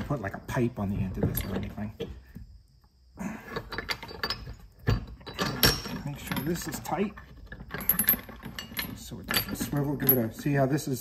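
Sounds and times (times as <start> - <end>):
chain clinking against metal vise: 0.8 - 2.2, 3.5 - 11.0.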